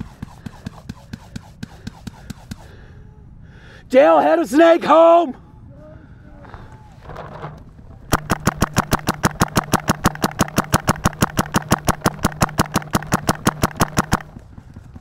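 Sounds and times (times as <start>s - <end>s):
paintball marker rapid firing: 0.0s - 2.8s, 8.1s - 14.8s
steady low hum: 0.0s - 4.5s, 5.2s - 15.0s.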